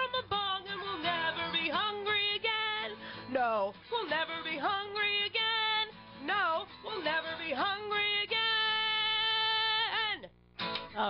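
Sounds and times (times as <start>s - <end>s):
woman singing: 0.0s - 10.3s
acoustic guitar: 0.0s - 11.0s.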